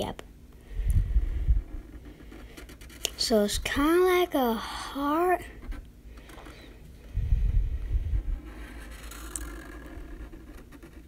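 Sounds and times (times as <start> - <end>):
marker scratching on paper: 1.6 - 3.5, 5.5 - 6.6, 8.2 - 11.0.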